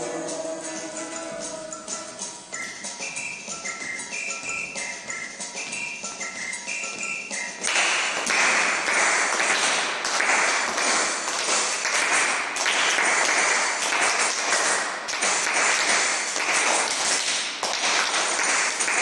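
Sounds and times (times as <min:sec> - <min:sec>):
hands clapping: 0:05.7 - 0:19.0.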